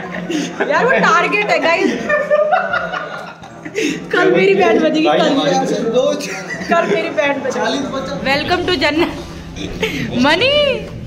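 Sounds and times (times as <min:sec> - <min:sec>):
woman talking: 0:10.1 - 0:11.0.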